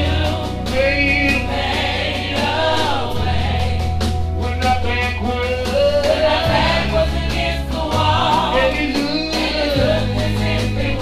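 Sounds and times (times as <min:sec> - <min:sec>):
bass line: 0:00.0 - 0:11.0
choir singing gospel: 0:00.0 - 0:11.0
drum beat: 0:00.0 - 0:11.0.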